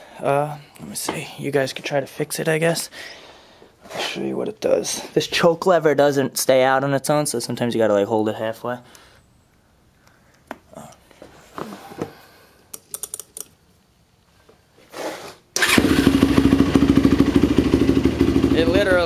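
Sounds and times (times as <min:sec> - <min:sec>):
quad engine idling: 0:15.6 - 0:19.0.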